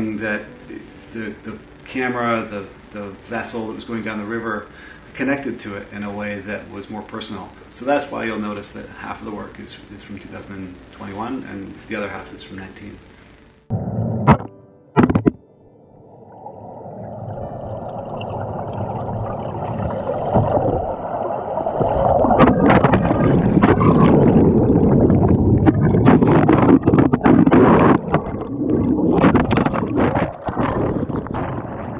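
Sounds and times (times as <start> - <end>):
camera knocks and bumps: 14.3 - 15.4
churning river water: 16.7 - 31.9.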